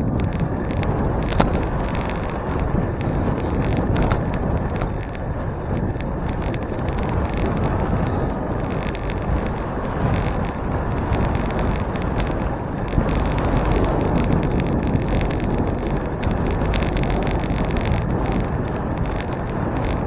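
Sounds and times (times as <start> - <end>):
wind rushing on microphone: 0.0 - 20.0.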